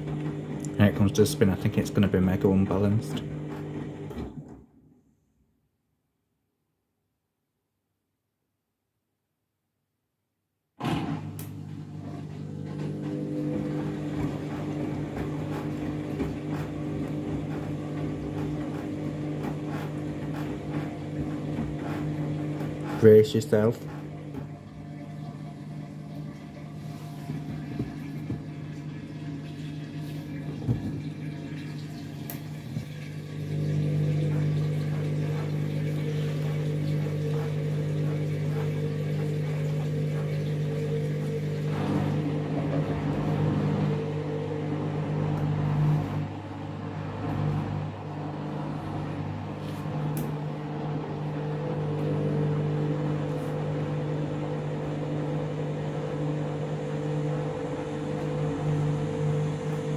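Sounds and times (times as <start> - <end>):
washing machine motor hum: 0.0 - 5.3, 10.8 - 59.9.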